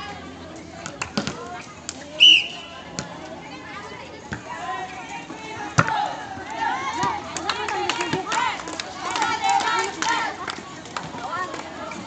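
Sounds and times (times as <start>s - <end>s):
voices calling out: 0.0s - 12.0s.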